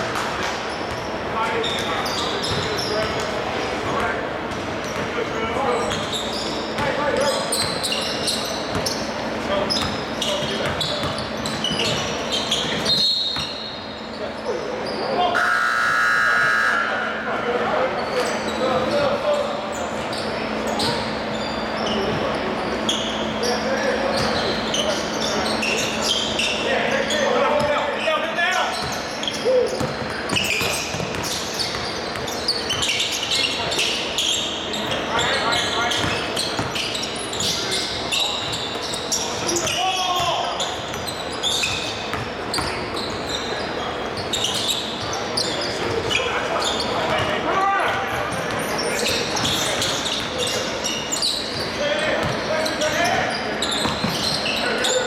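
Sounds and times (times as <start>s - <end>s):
basketballs bouncing: 9.7s - 13.5s, 28.8s - 33.0s, 35.9s - 36.8s, 38.4s - 43.2s, 51.5s - 52.5s, 53.7s - 54.4s.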